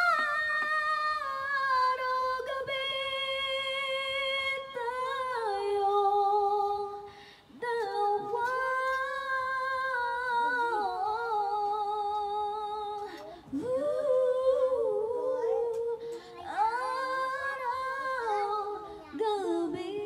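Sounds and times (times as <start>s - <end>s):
woman singing unaccompanied: 0.0s - 20.0s.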